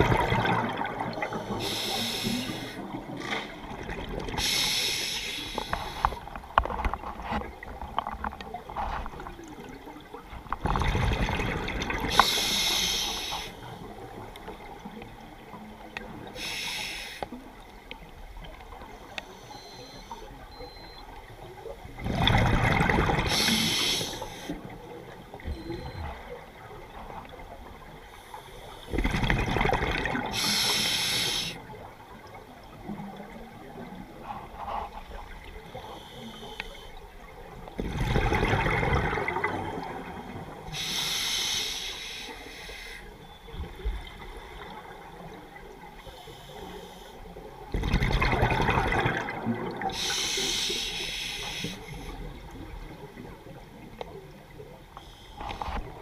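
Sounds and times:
exhaled bubbles gurgling: 0.0s - 16.6s, 20.4s - 35.8s, 37.0s - 40.9s, 47.4s - 56.0s
hissing inhale through regulator: 1.3s - 3.0s, 4.4s - 6.3s, 12.1s - 13.8s, 16.4s - 17.4s, 23.3s - 24.6s, 30.3s - 31.6s, 35.7s - 37.0s, 40.7s - 43.2s, 46.0s - 47.4s, 49.9s - 52.4s, 55.0s - 55.7s.

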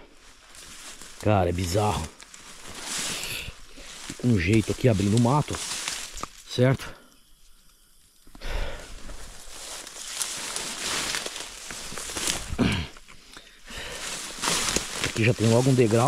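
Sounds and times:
footsteps: 0.0s - 6.4s, 9.0s - 12.9s, 13.8s - 16.0s
grass and brush rustling: 0.0s - 16.0s.

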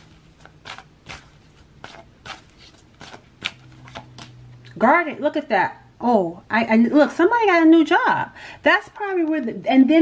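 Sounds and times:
cards being shuffled: 0.0s - 4.4s.

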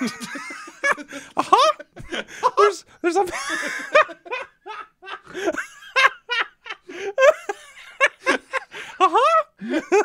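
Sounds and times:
man laughing: 0.0s - 10.0s.

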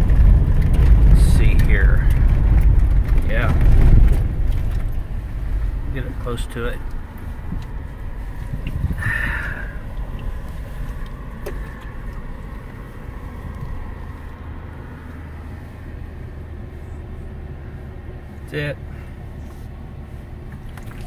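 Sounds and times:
tyres rumbling on gravel: 0.0s - 20.9s.

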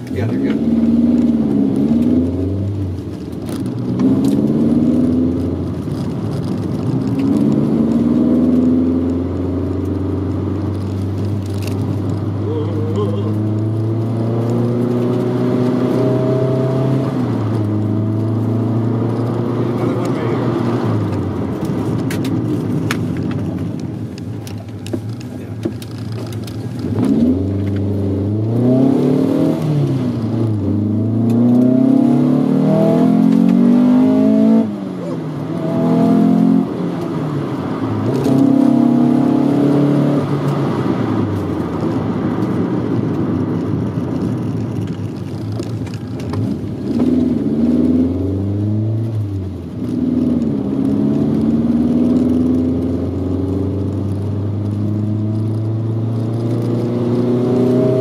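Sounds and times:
car engine accelerating: 0.0s - 58.0s
road and tyre noise: 0.0s - 58.0s.

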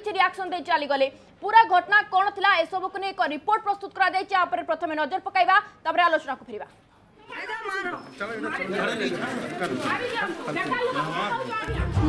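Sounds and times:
babble of overlapping voices: 6.7s - 12.0s.

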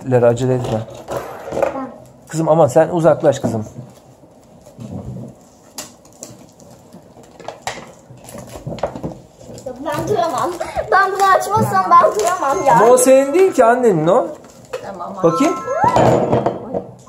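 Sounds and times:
child speaking: 1.6s - 2.0s, 9.7s - 13.5s, 14.8s - 16.9s
plastic shrink-wrap rustling: 3.8s - 15.8s.

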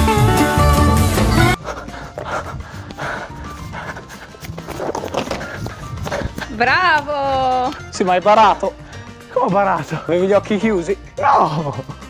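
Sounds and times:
person gasping for breath: 1.6s - 6.5s.

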